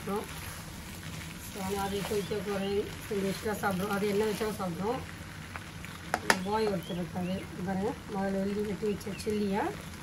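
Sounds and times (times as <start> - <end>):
noodles sizzling in a wok: 0.0 - 10.0.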